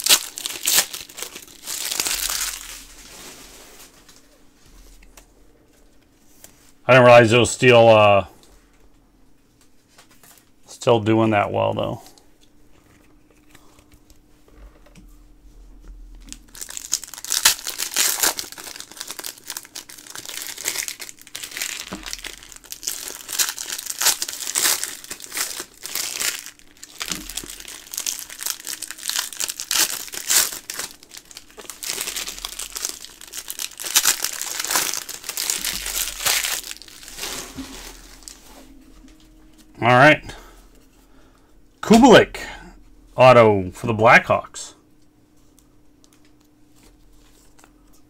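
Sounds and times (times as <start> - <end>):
foil wrappers crinkling and tearing: 0.0 - 4.2, 16.2 - 38.6.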